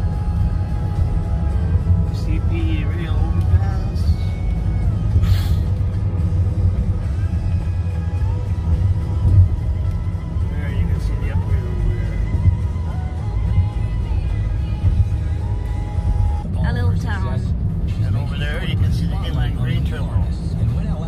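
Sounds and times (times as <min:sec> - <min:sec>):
faint music: 0:00.0 - 0:21.0
road and engine rumble in car: 0:00.0 - 0:21.0.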